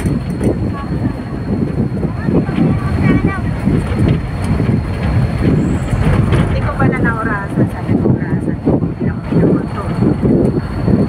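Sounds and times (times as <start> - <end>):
indistinct voices: 0.0 - 11.0
vehicle engine and road noise: 0.0 - 11.0
wind buffeting microphone: 0.0 - 11.0.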